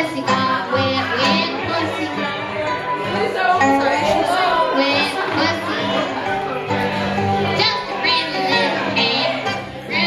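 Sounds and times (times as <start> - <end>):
woman singing: 0.0 - 6.2, 7.4 - 10.0
acoustic guitar playing: 0.0 - 10.0.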